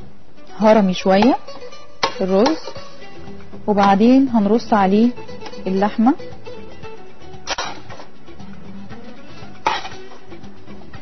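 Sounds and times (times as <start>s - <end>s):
soft background music: 0.0s - 11.0s
kitchenware clinking: 7.5s - 8.1s, 9.6s - 10.2s.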